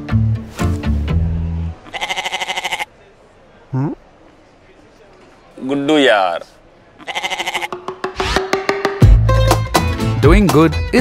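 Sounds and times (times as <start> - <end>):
goat bleating: 1.8 - 2.9, 7.0 - 7.8.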